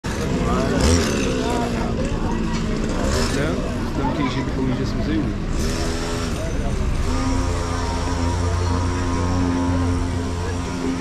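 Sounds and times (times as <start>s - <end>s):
low engine rumble: 0.0s - 11.0s
people talking over one another: 0.0s - 11.0s.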